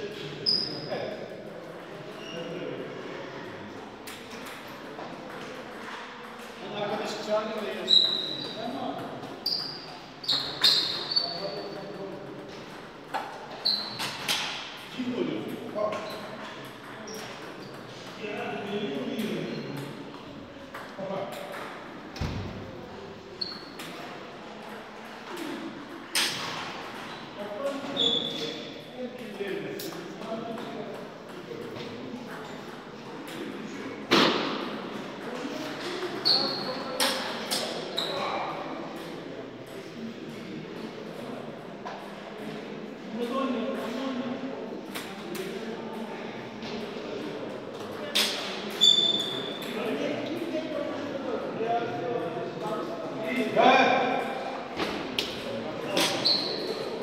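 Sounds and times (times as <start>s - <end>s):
murmur of voices: 0.0s - 57.0s.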